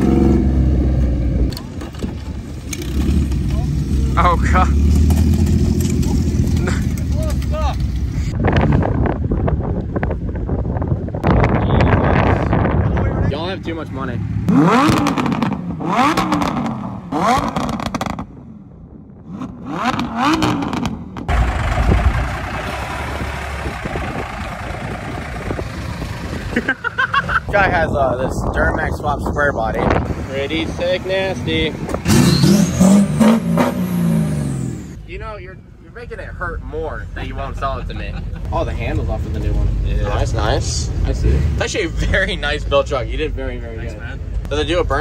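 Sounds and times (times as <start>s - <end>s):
small truck engine running: 21.3s - 27.2s.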